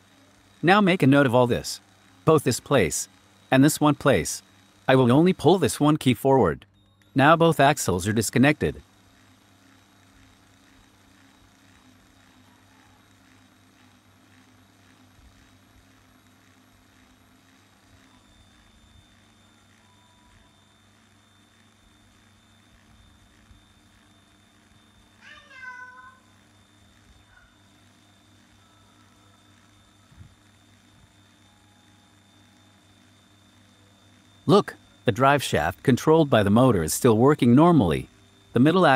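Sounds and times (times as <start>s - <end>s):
cordless drill humming: 6.8s - 25.2s
cat meowing: 25.2s - 26.2s.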